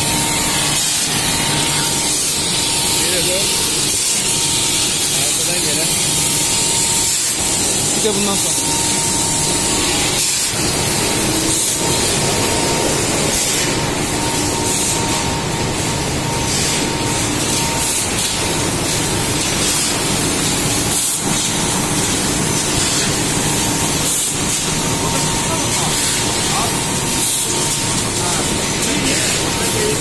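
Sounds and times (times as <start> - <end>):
industrial machinery hissing: 0.0 - 30.0.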